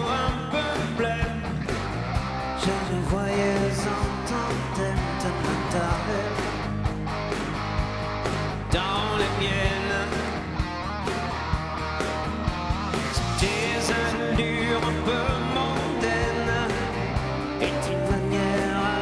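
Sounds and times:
guitars: 0:00.0 - 0:19.0
steady drum beat: 0:00.0 - 0:19.0.

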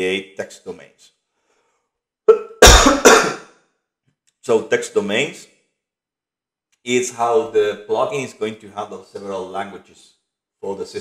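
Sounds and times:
man coughing loudly: 0:02.3 - 0:03.4.

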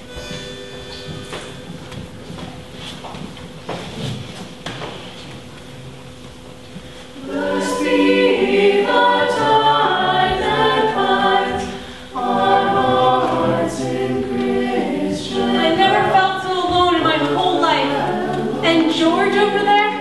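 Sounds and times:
choir singing a hymn: 0:07.2 - 0:20.0.

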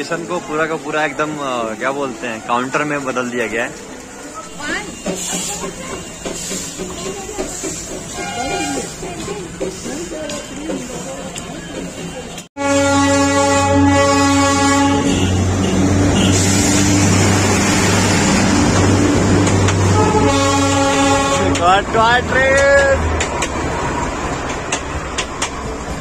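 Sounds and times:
train carriages rumbling past: 0:00.0 - 0:26.0
steam locomotive whistle blasts: 0:08.2 - 0:08.9, 0:12.6 - 0:16.6.

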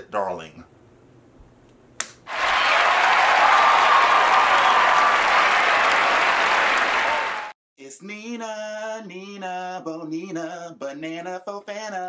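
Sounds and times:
crowd applause: 0:02.3 - 0:07.6.

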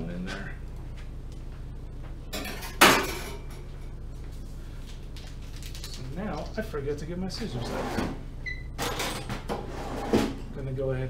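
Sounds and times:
metal utensil clanking on dishware: 0:02.3 - 0:03.5.

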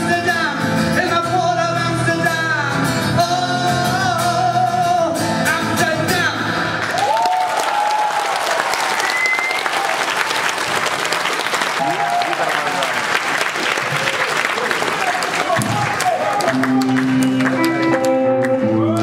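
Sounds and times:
audience applauding: 0:06.8 - 0:19.0
short whistle: 0:09.1 - 0:09.6.

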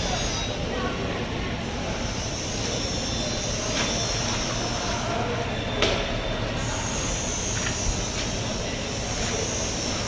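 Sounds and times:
mechanical background noise: 0:00.0 - 0:10.0.

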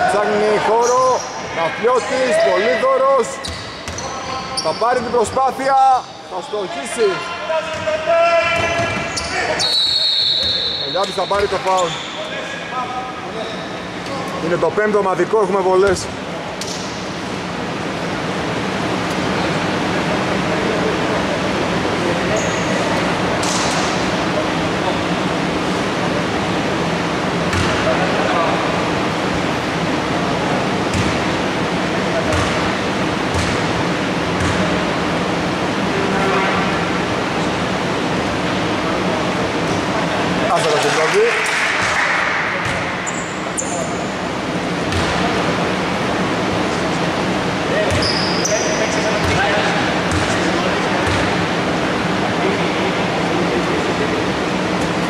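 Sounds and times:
voices: 0:00.0 - 0:16.8
sneaker squeaks: 0:00.8 - 0:01.5, 0:03.3 - 0:06.2, 0:07.7 - 0:12.5, 0:13.3 - 0:14.4, 0:22.3 - 0:23.9, 0:41.8 - 0:44.2, 0:47.8 - 0:49.4.

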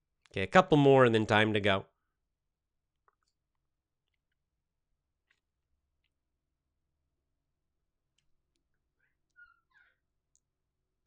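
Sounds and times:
faint high chirp: 0:09.0 - 0:10.0.

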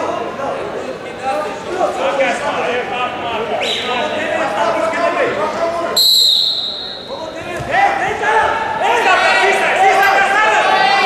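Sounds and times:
voices shouting: 0:05.9 - 0:11.0
referee's whistle blast: 0:06.0 - 0:07.2.

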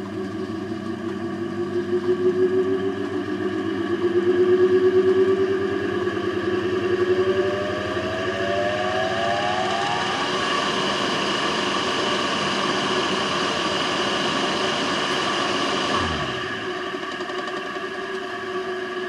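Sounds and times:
electric motor whine: 0:00.0 - 0:19.0.

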